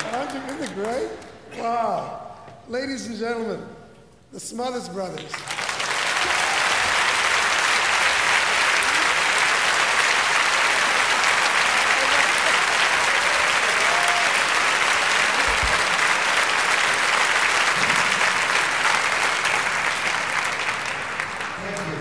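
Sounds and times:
audience applauding: 0:00.0 - 0:01.3, 0:05.2 - 0:22.0.

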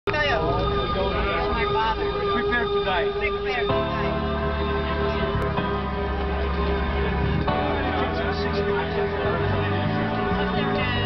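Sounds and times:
people chatting: 0:00.1 - 0:11.0
steady hum: 0:00.1 - 0:11.0.

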